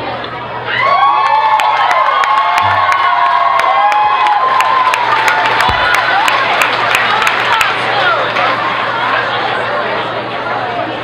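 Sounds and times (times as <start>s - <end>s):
crowd cheering and shrieking: 0.6s - 9.9s.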